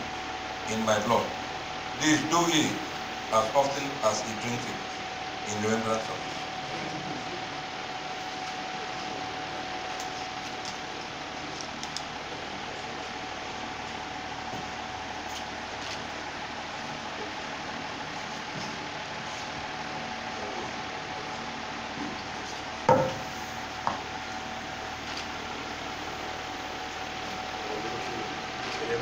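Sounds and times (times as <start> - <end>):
mechanical hum with thin whine: 0.0 - 29.0.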